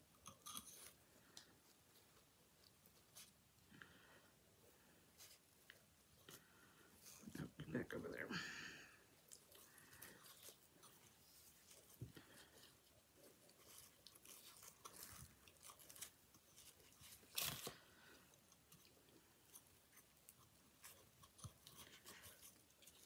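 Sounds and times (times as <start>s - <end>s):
ribbon rustling and crinkling: 9.2s - 23.0s.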